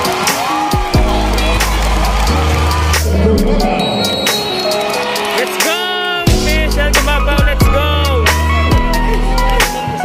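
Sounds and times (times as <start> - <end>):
crowd hubbub: 0.0 - 7.0
music with heavy bass over speakers: 0.0 - 10.0.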